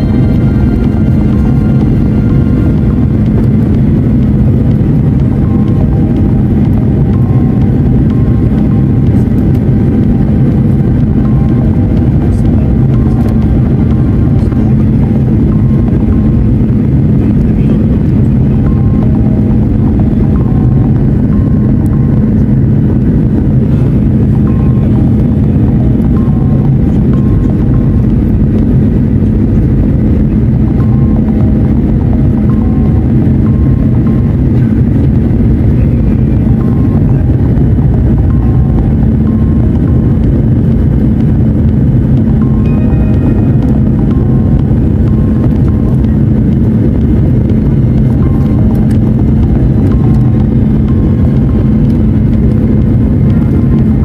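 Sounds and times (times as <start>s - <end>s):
airliner cabin engine rumble: 0.0s - 54.0s
faint music: 0.0s - 54.0s.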